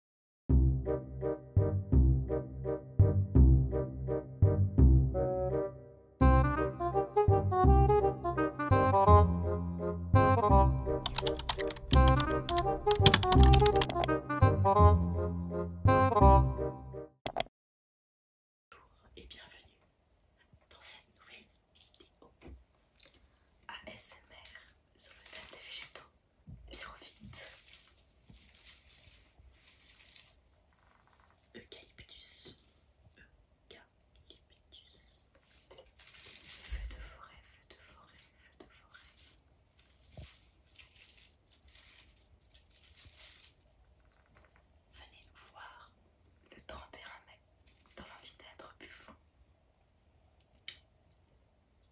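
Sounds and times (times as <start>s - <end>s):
background music with bass line: 0.5s - 11.1s, 11.7s - 17.1s
computer keyboard typing: 10.9s - 14.2s, 17.3s - 17.5s
dry leaves crackling and rustling: 27.4s - 30.4s, 35.8s - 36.8s, 39.0s - 43.7s.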